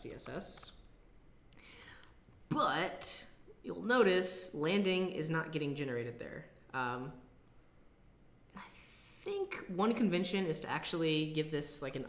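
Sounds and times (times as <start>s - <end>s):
man breathing softly: 1.5s - 2.2s.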